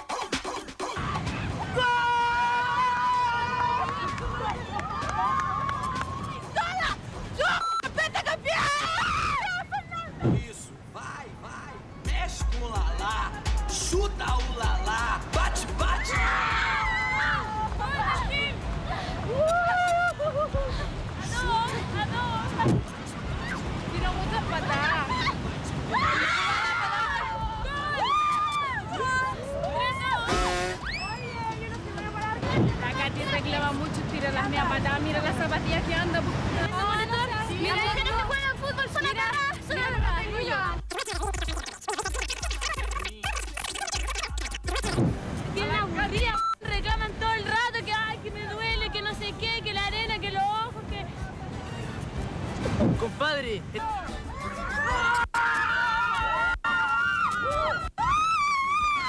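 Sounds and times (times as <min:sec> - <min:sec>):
women shouting excitedly: 0:01.0 - 0:10.2, 0:15.8 - 0:18.6, 0:23.4 - 0:33.6, 0:54.3 - 0:59.0
background music: 0:11.3 - 0:25.1, 0:26.8 - 0:40.8, 0:44.6 - 0:59.0
background chatter: 0:26.8 - 0:55.3.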